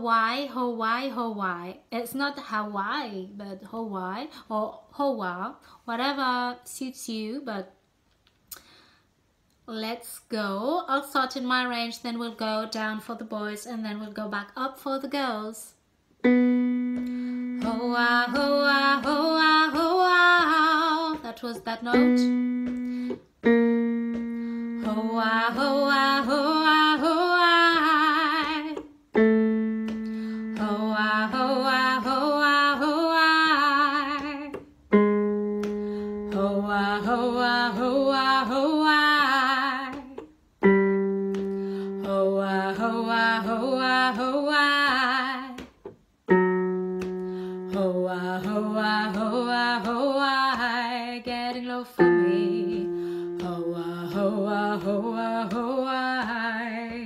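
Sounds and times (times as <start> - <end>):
woman singing scale: 10.3 - 57.0
electric keyboard chords: 16.2 - 19.3, 21.9 - 27.1, 29.1 - 32.3, 34.8 - 38.0, 40.6 - 43.1, 46.3 - 48.0, 52.0 - 55.0.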